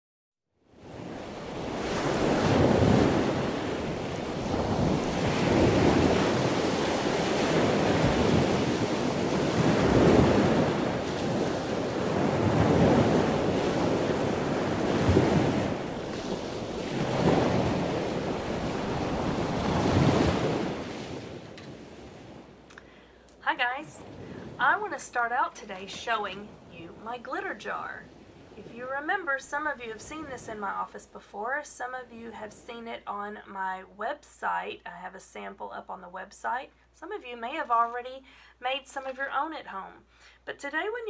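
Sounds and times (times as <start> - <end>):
waves breaking and washing in: 0.6 - 31.1.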